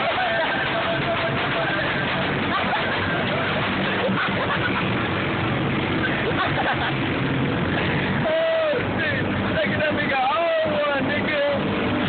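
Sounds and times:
speedboat engine running: 0.0s - 12.0s
water rushing from wake: 0.0s - 12.0s.

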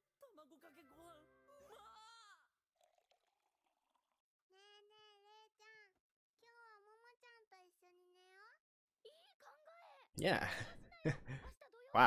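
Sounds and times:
faint anime dialogue: 0.0s - 2.6s, 4.5s - 12.0s
high-pitched childlike voice speaking: 0.2s - 2.5s, 4.5s - 10.2s, 11.6s - 12.0s.

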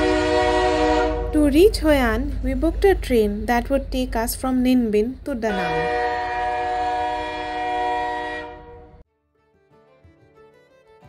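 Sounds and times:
train horn chord: 0.0s - 1.5s, 5.5s - 9.0s
train rumbling: 0.0s - 9.0s.

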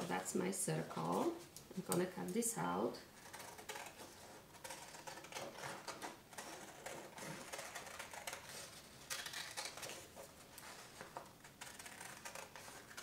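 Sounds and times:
scissors snipping paper: 3.2s - 10.0s, 11.1s - 13.0s
paper rustling: 3.2s - 13.0s.

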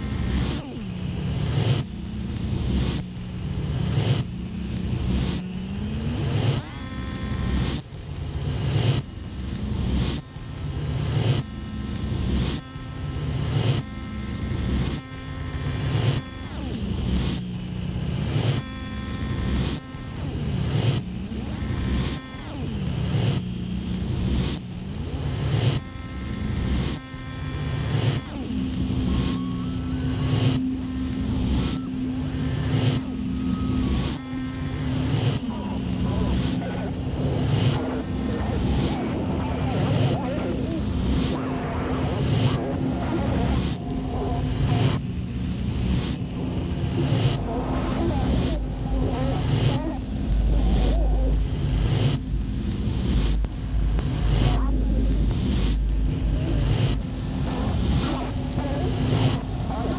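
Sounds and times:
industrial noise music: 0.0s - 59.9s
deep low rumble: 35.8s - 59.9s.

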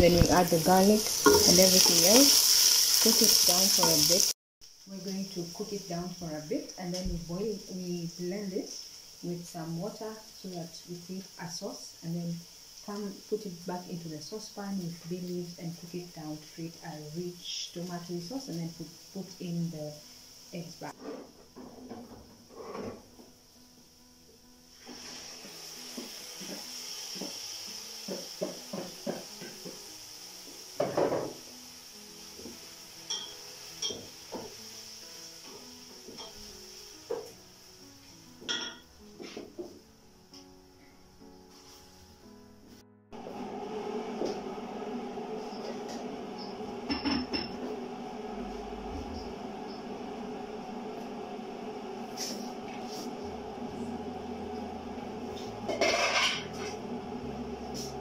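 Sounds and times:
background music: 0.0s - 4.3s, 21.6s - 46.2s, 51.4s - 58.0s
pots and utensils clinking: 0.0s - 4.3s, 30.8s - 31.4s, 32.4s - 34.6s, 35.4s - 36.5s, 38.4s - 39.8s, 45.5s - 47.8s, 55.4s - 56.9s.

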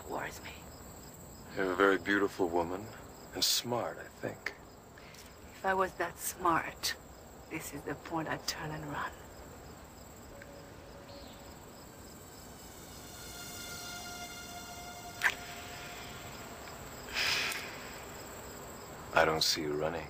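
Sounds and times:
crickets chirping: 0.0s - 20.0s
faint held tones: 10.3s - 18.7s
short hissing burst: 11.9s - 18.6s.

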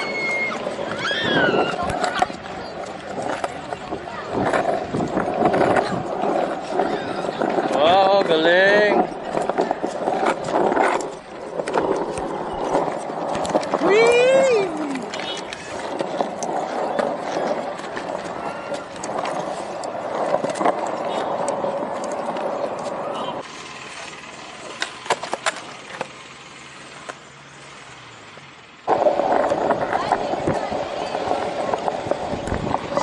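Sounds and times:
skateboard clacks: 0.0s - 26.2s, 28.4s - 33.0s
skateboard wheels rolling on concrete: 0.0s - 33.0s.

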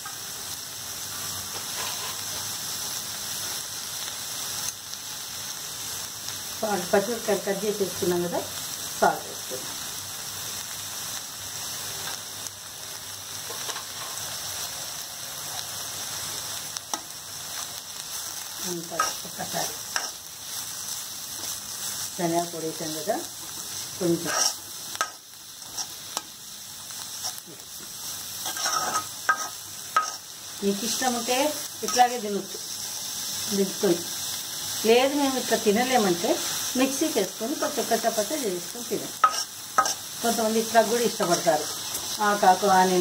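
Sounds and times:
vegetables sizzling in a pan: 0.0s - 43.0s
ladle scraping a pan: 1.6s - 2.3s, 28.4s - 30.2s
sharp metal scrapes: 24.2s - 25.9s, 28.4s - 30.2s.

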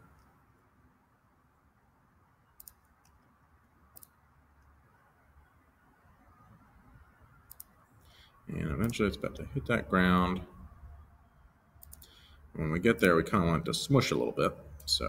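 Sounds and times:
computer mouse clicks: 2.6s - 3.3s, 3.9s - 4.7s, 7.4s - 7.8s, 11.8s - 12.2s.

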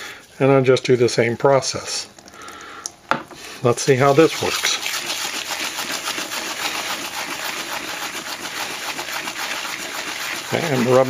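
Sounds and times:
wet rubbing: 2.1s - 11.0s.

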